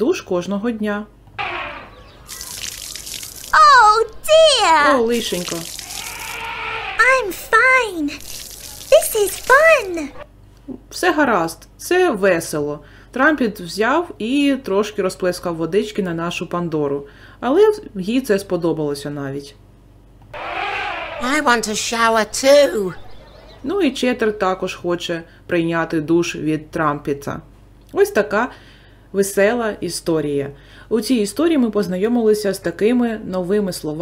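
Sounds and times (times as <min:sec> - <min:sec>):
water splash sound effect: 0:02.3 - 0:04.0, 0:05.1 - 0:06.5, 0:08.1 - 0:10.2
high-pitched character voices: 0:03.4 - 0:06.4, 0:07.0 - 0:10.2, 0:21.2 - 0:23.7.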